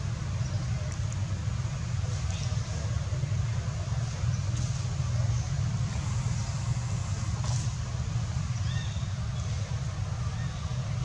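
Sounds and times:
low rumbling background noise: 0.0 - 11.0.

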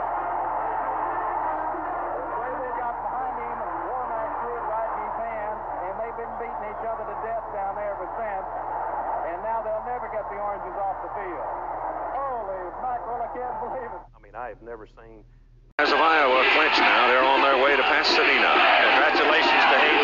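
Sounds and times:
stadium crowd cheering: 0.0 - 14.0, 15.8 - 20.0
announcer's excited voice: 15.8 - 20.0.

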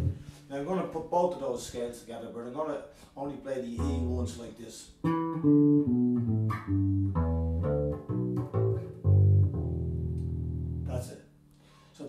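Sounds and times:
electric bass guitar plucked notes: 0.0 - 0.4, 3.8 - 11.1.

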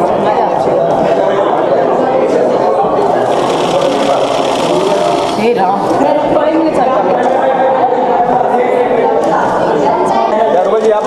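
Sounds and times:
murmur of overlapping voices: 0.0 - 11.0.

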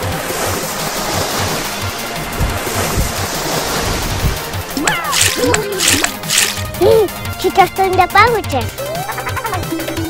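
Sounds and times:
music with steady beat: 4.6 - 7.4
water gun spraying: 5.0 - 6.8.

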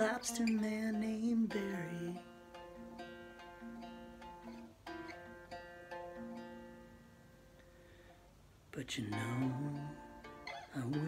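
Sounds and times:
fingerpicked acoustic guitar: 0.0 - 11.0.

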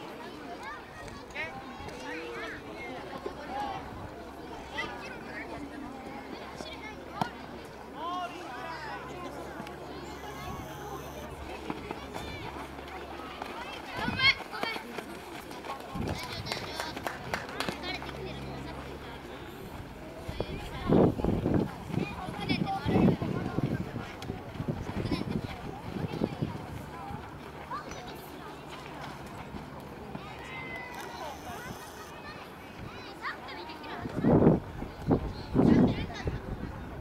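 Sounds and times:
distant shouts of people: 7.9 - 14.7, 30.1 - 33.9
running feet on dry dirt: 10.3 - 32.0.

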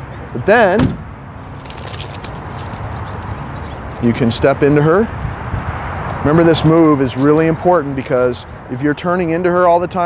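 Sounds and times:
light metallic jingling: 1.6 - 5.4.

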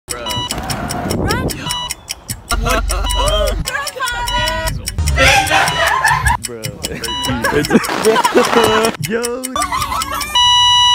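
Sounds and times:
voices: 0.1 - 10.6
fast even ticking: 0.1 - 10.9
rumbling inside car: 0.4 - 9.0.

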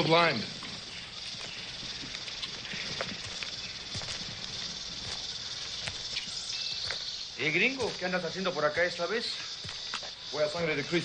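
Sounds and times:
high insect drone: 0.0 - 11.0.

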